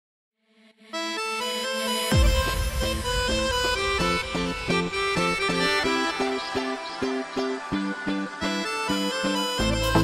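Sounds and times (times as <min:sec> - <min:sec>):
accordion dance music: 0:01.0 - 0:10.0.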